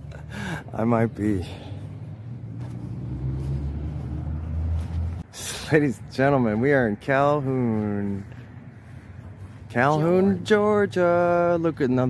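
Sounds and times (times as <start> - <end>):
vehicle engine passing by: 0.6 - 10.5.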